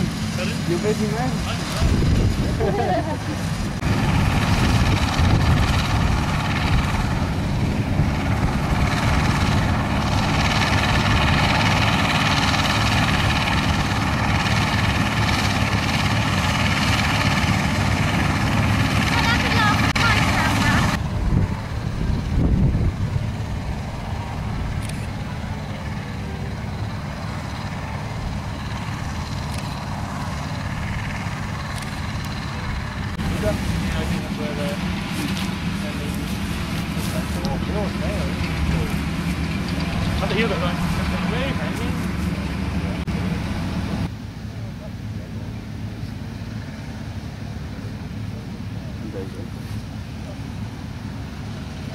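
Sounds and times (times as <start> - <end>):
combine harvester drone: 0.0 - 51.9
tractor engine: 0.0 - 51.9.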